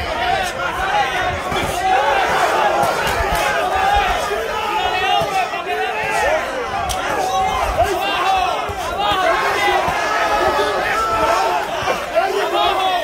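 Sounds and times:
crowd shouting: 0.0 - 13.0.

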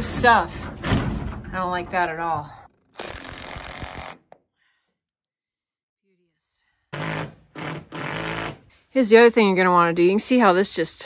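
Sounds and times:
power drill driving a screw: 3.0 - 4.3, 6.9 - 8.6.

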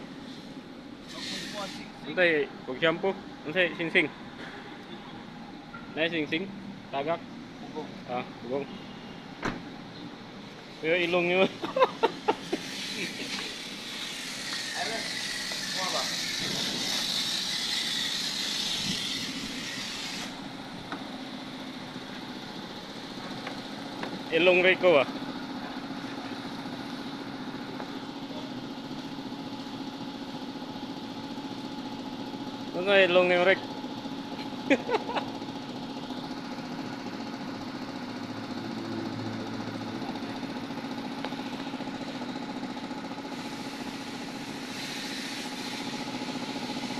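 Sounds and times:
pressure washer humming: 0.0 - 4.5, 10.4 - 46.9.

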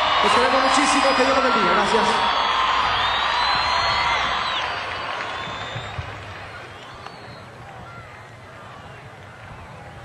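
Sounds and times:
large crowd cheering: 0.0 - 10.0.

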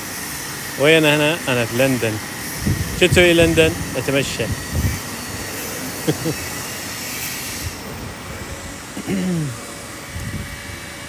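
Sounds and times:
city street noise: 0.0 - 11.0.

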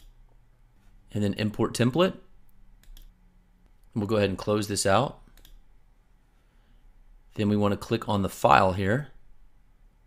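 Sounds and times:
computer mouse clicks: 2.8 - 4.0, 5.2 - 5.6.

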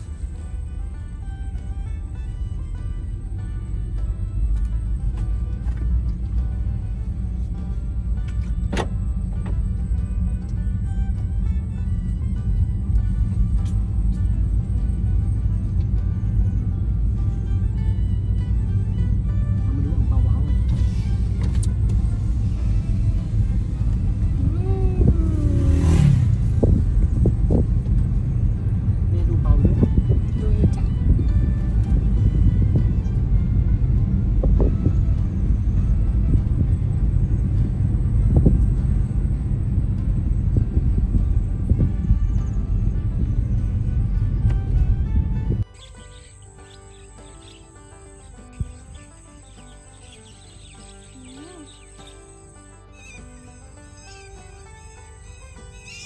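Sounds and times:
car cabin road rumble: 0.0 - 56.0.

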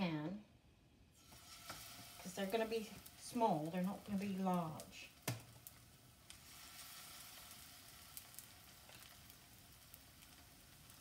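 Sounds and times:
batter sizzling in hot oil: 1.2 - 11.0.

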